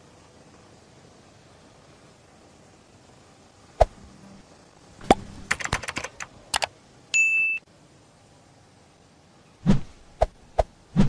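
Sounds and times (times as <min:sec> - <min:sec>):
sharp clicks: 0:05.1 - 0:06.7.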